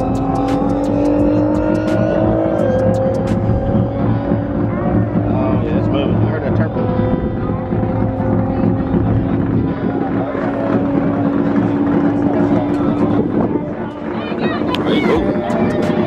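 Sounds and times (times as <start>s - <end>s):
race car engine drone: 0.0s - 16.0s
people talking: 3.6s - 16.0s.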